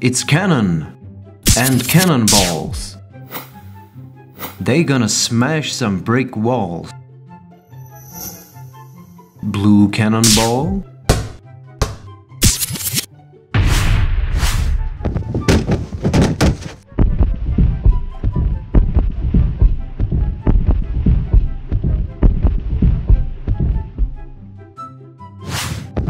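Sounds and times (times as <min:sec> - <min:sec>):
background music: 0:00.0 - 0:26.0
cartoon cannon shot: 0:01.5 - 0:02.7, 0:10.2 - 0:10.6
bricks clattering and tumbling: 0:15.1 - 0:16.9.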